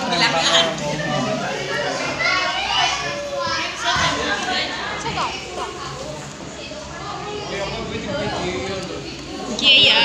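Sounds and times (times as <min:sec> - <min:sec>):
young people chattering: 0:00.0 - 0:10.0.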